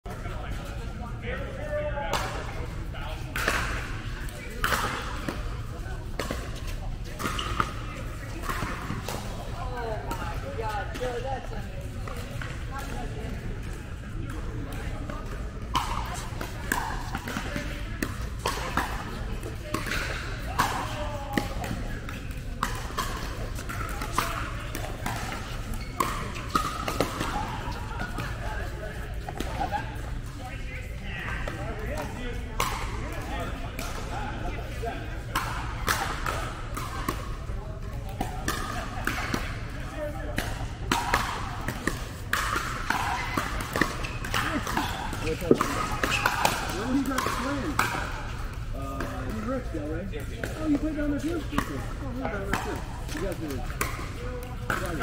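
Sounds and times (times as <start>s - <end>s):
players' voices: 0.1s - 55.0s
paddles striking pickleball: 2.1s - 11.2s, 14.3s - 30.3s, 31.4s - 34.1s, 35.3s - 55.0s.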